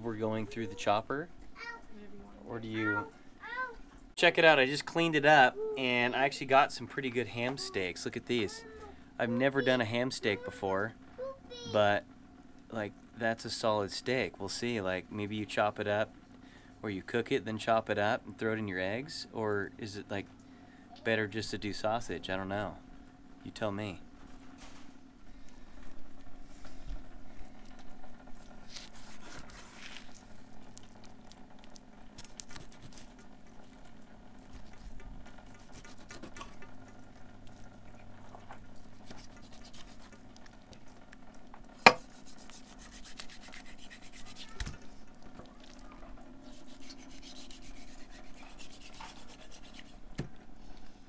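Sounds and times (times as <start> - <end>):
low steady hum: 0.0 - 51.0
knife slicing and scraping meat: 28.4 - 30.8, 32.2 - 33.3, 34.5 - 36.6, 38.8 - 40.3, 41.8 - 44.7, 46.4 - 50.0.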